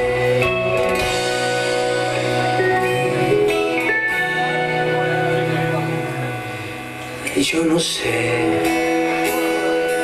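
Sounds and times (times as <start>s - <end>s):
acoustic guitar: 0.0s - 10.0s
electric bass: 0.0s - 10.0s.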